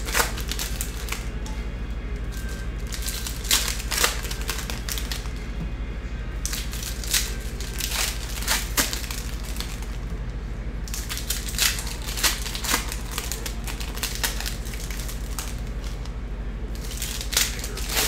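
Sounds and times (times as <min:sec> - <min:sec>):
foil wrappers crinkling: 0:00.0 - 0:01.3, 0:02.2 - 0:05.4, 0:06.4 - 0:10.2, 0:10.8 - 0:16.1, 0:16.7 - 0:18.0
low steady hum: 0:00.0 - 0:18.0.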